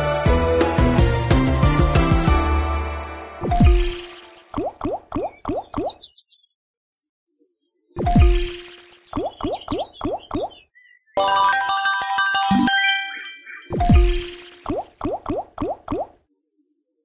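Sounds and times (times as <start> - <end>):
rising reel-stop chirps: 3.4 - 6.0, 13.7 - 16.1.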